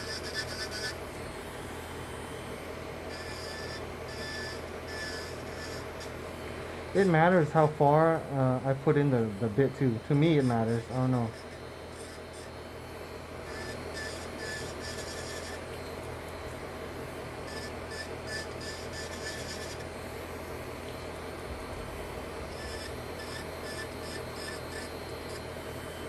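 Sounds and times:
bit grinding on nail: 0.0 - 1.2, 3.0 - 6.2, 8.7 - 12.7, 13.3 - 16.6, 17.2 - 19.9, 22.0 - 25.5
electric nail drill running: 0.0 - 26.0.

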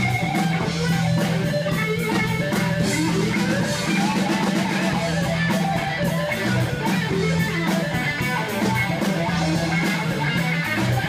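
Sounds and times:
drum kit: 0.0 - 11.0
electric guitar strumming: 0.0 - 11.0.

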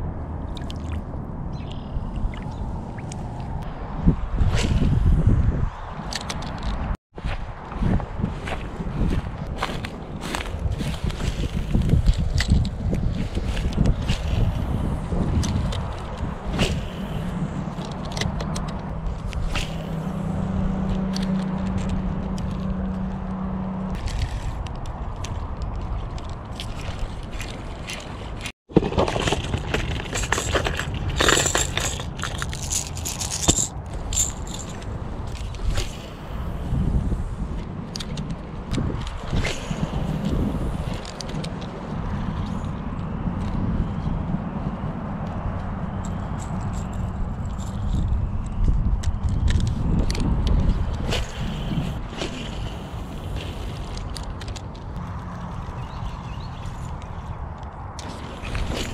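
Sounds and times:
wind buffeting microphone: 0.0 - 58.9
plastic lures clicking and rattling: 29.1 - 35.8.

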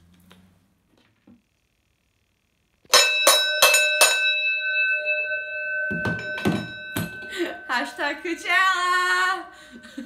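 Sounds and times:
ring bell struck: 2.9 - 10.0.

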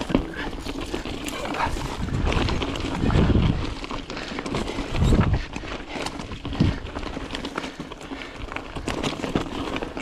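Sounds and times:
bike tyres crunching over rocks: 0.0 - 10.0
wind rumble on microphone: 0.6 - 7.4.

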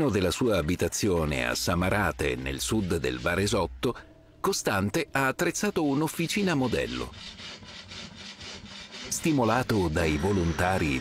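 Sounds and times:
bow saw rasping through log: 1.6 - 3.7, 5.4 - 11.0.

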